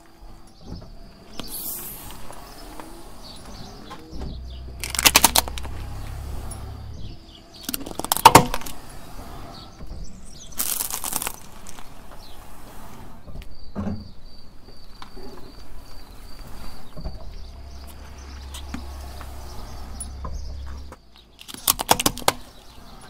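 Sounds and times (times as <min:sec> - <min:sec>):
low engine rumble: 0:00.0 - 0:23.0
tyre crushing plastic toys: 0:04.8 - 0:05.8, 0:07.6 - 0:08.8, 0:10.4 - 0:12.0, 0:21.3 - 0:22.6.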